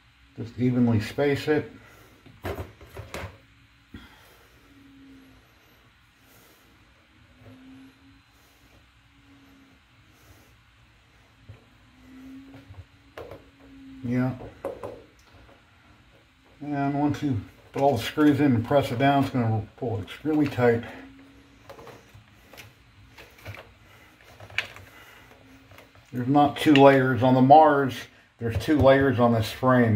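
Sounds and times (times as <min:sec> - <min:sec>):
person speaking: 0:13.7 - 0:14.7, 0:16.6 - 0:22.0, 0:26.1 - 0:29.9.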